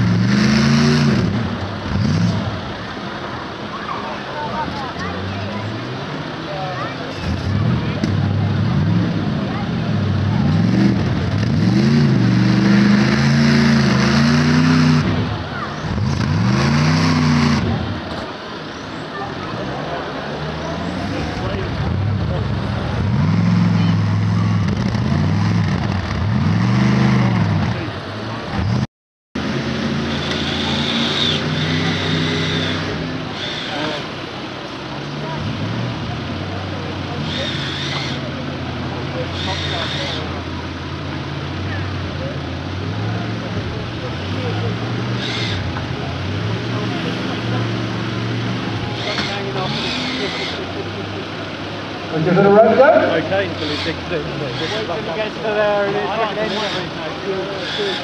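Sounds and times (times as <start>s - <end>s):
engine running at steady revs: 0.0s - 58.0s
off-road engine revving: 0.0s - 58.0s.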